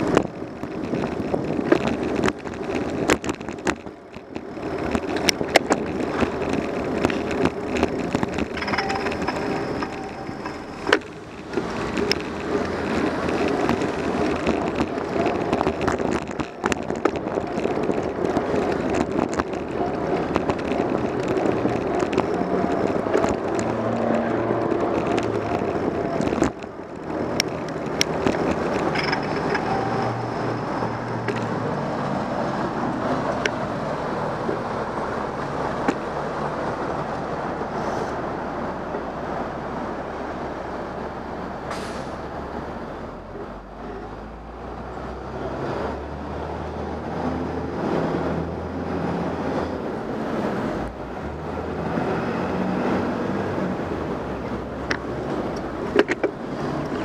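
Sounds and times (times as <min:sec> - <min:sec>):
road noise: 0:00.0 - 0:57.0
vehicle engines passing: 0:00.0 - 0:57.0.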